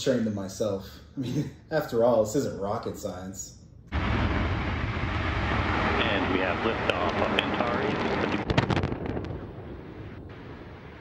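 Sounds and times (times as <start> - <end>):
rocket explosion rumble: 3.9 - 11.0
sharp crackles: 3.9 - 11.0.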